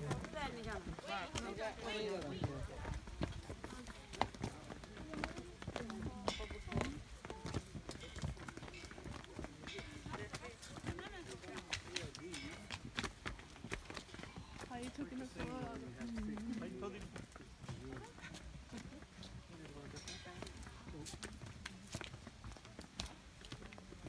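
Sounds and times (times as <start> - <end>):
footsteps on stone: 0.0 - 24.0
people talking in background: 0.0 - 24.0.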